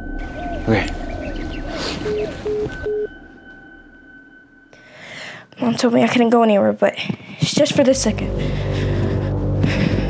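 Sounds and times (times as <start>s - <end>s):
birds chirping: 0.0s - 4.2s
phone hang-up beeps: 2.0s - 3.6s.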